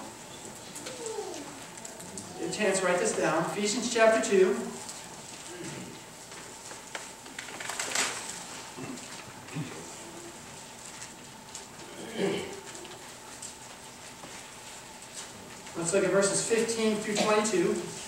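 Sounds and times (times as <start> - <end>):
faint murmured voice: 0.7 - 2.5
paper pages rustling: 6.2 - 9.3.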